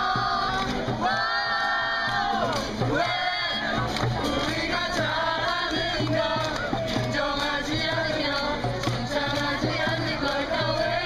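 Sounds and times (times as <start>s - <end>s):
hand drum beat: 0.0s - 11.0s
young voices singing together: 0.0s - 11.0s.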